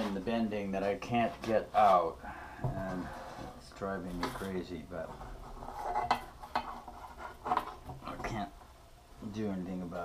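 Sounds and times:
metal bar scraping on steel: 5.2s - 7.8s.

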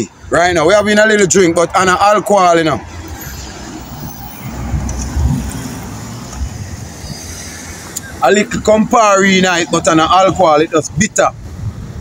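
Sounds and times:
passing cars rumbling: 0.0s - 12.0s.

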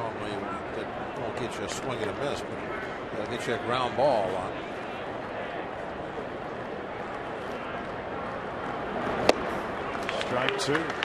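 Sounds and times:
crowd murmur: 0.0s - 11.0s
ball smacking into catcher's mitt: 9.2s - 9.5s.

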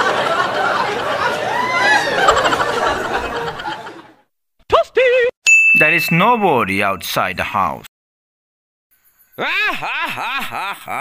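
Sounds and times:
bright bell ding: 5.5s - 6.9s.

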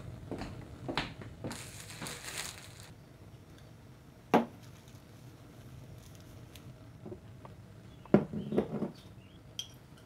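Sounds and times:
plastic bag crinkling: 1.5s - 2.9s.

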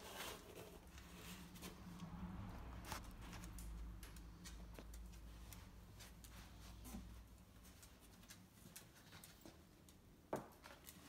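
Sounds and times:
dog scuffs and clicks: 2.8s - 11.0s.

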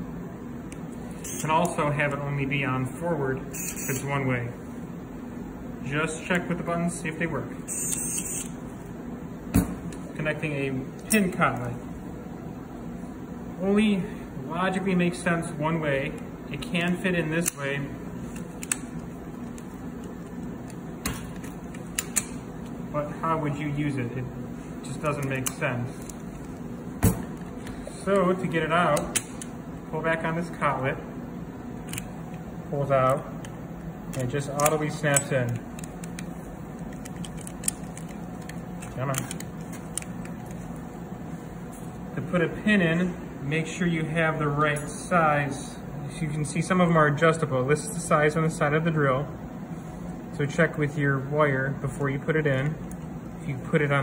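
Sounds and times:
low room hum: 0.0s - 54.0s.

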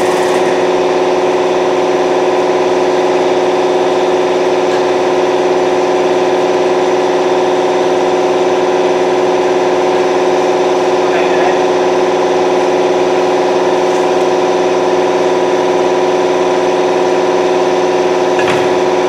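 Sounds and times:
machine droning with pitched hum: 0.0s - 19.0s.

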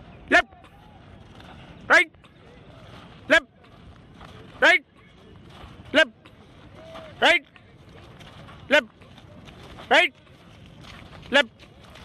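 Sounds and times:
faint outdoor background noise: 0.0s - 12.0s
man shouting short calls: 0.3s - 0.8s.

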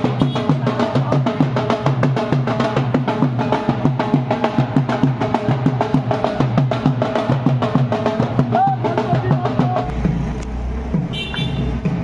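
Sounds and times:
drums beating quick rhythm: 0.0s - 12.0s.

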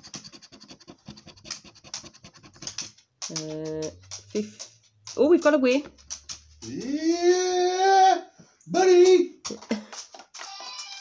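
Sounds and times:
coin scraping scratchcard: 0.0s - 3.3s.

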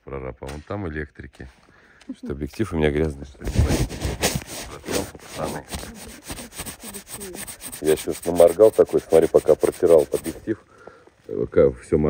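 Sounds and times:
scratchy rubbing on microphone: 3.2s - 10.6s.

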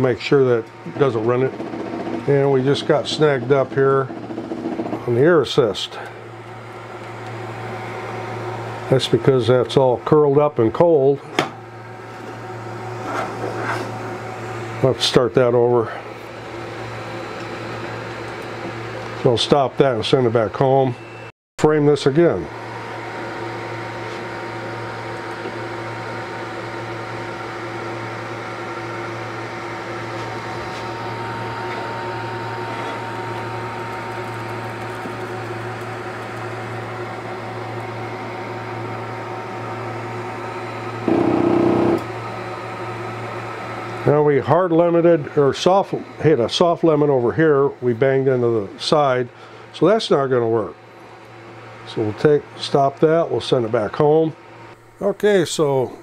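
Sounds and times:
low electrical hum: 5.0s - 56.0s
fan-like whirring hiss: 42.2s - 56.0s.

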